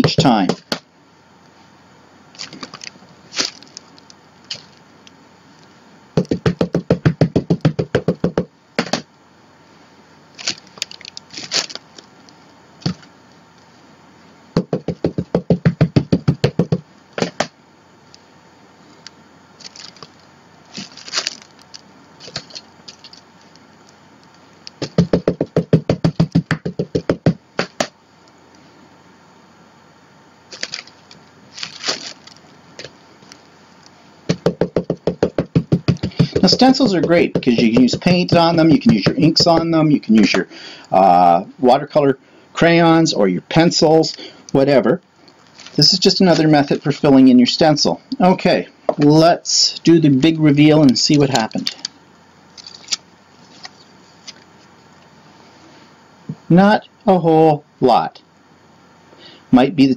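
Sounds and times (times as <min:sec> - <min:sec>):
ink pad tapping on rubber stamp: 0:06.2 - 0:09.0, 0:14.6 - 0:17.5, 0:24.8 - 0:27.9, 0:34.3 - 0:39.7
stamp knocking on paper: 0:06.2 - 0:09.0, 0:14.6 - 0:17.5, 0:24.8 - 0:27.9, 0:34.3 - 0:39.8.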